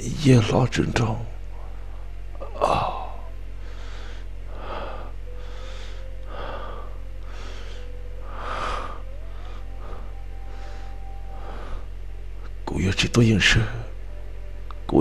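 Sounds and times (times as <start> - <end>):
man breathing heavily and gasping: 2.6 - 12.0.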